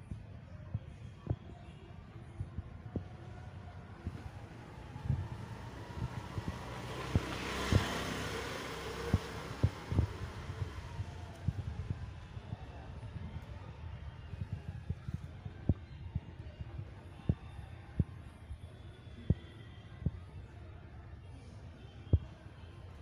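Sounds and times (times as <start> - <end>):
wind-like rushing noise: 2.4 - 18.1.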